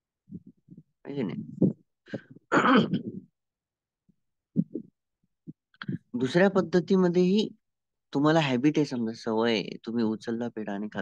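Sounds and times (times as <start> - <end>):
man clearing throat: 2.5 - 3.3.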